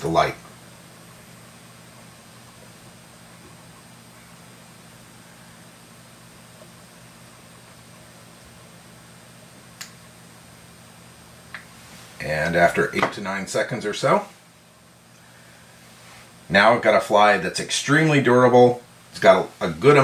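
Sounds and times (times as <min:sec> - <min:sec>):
faint hum and hiss: 0:00.0 - 0:20.0.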